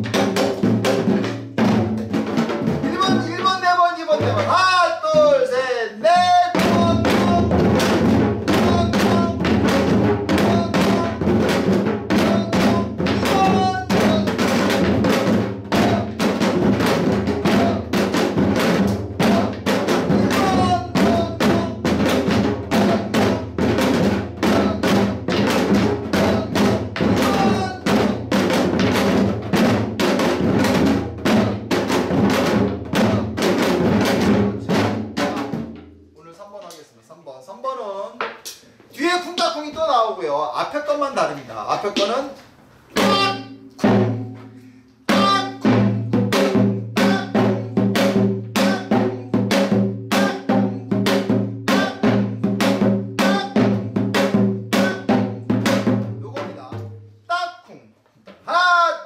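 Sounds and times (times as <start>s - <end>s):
hourglass drum fast rhythm: 0.0s - 35.9s, 45.1s - 56.8s.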